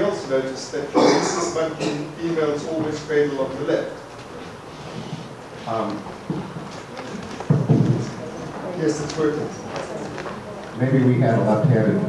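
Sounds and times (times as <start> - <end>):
microphone handling thumps: 4.5 - 8.6.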